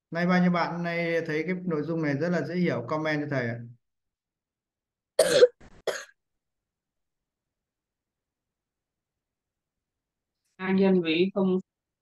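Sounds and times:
person coughing: 0:05.2 - 0:06.2.

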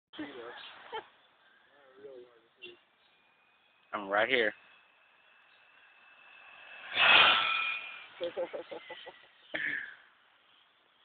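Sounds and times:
toy car high whine: 0:03.2 - 0:09.5.

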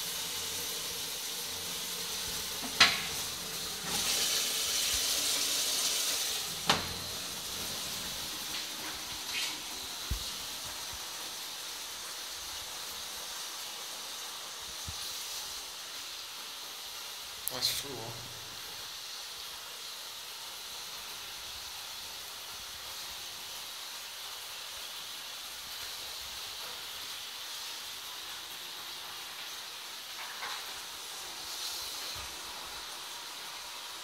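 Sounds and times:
toilet cistern refilling hiss: 0:00.0 - 0:34.0.

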